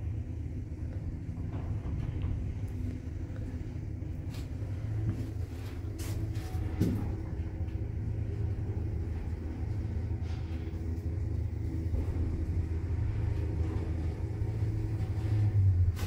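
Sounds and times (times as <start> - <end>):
lift cabin rumble: 0.0 - 16.0.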